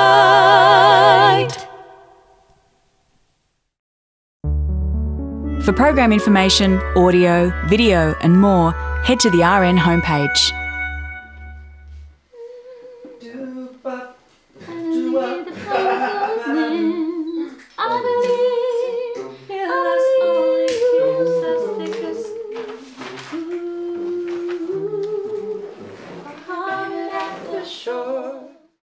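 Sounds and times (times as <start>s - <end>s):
quieter low notes: 4.4s - 12.2s
sustained music chord with low bass: 4.4s - 12.2s
voice holding sung notes: 5.6s - 10.6s, 14.6s - 25.8s
person humming a held note: 11.6s - 13.6s.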